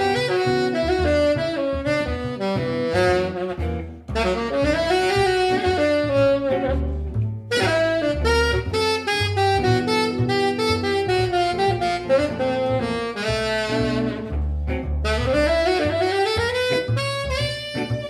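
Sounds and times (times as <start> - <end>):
double bass: 0.0 - 18.0
guitar accompaniment: 0.0 - 18.0
saxophone improvising jazz: 0.0 - 18.0.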